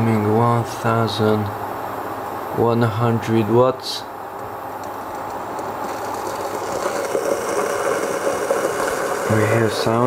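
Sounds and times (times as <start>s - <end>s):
pot rattling crackle on hot plate: 4.9s - 10.0s.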